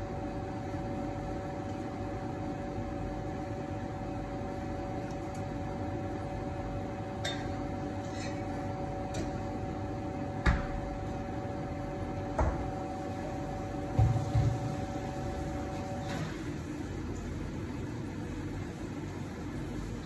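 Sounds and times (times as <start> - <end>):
espresso machine humming: 0.0 - 18.4.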